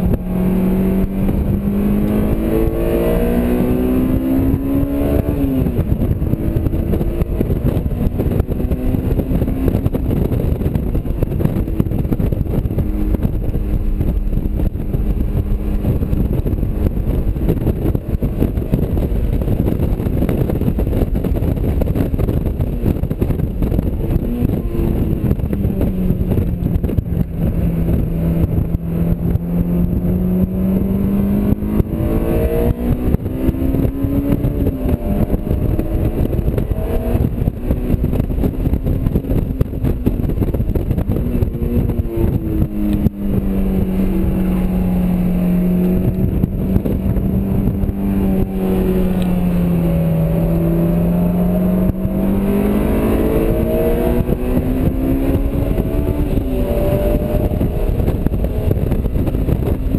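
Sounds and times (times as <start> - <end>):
car engine revving: 0.0 - 59.9
wind and road noise: 0.0 - 59.9.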